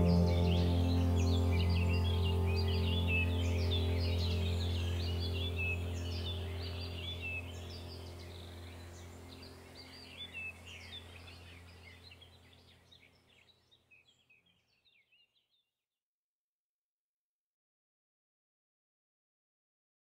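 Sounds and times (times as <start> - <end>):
low steady hum: 0.0 - 13.2
small birds chirping: 0.0 - 15.6.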